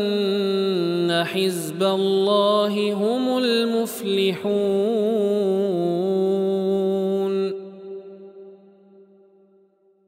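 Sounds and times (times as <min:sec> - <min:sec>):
man reciting melodically: 0:00.0 - 0:08.2.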